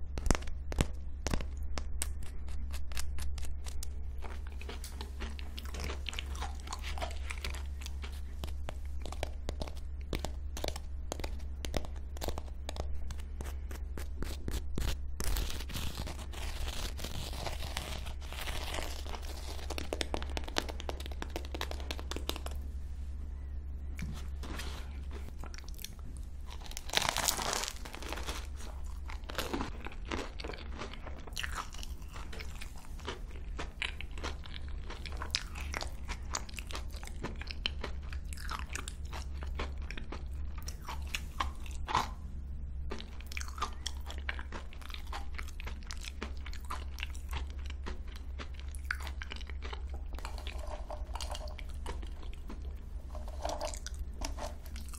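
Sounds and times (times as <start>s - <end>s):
crunchy pastry chewing: 0.0s - 22.7s, 24.0s - 54.9s
steady low hum: 0.0s - 54.9s.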